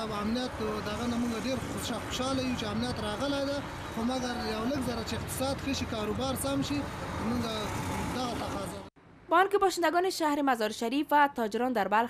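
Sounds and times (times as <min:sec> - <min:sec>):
man talking: 0:00.0 - 0:08.9
low rumble of vehicles: 0:00.0 - 0:09.3.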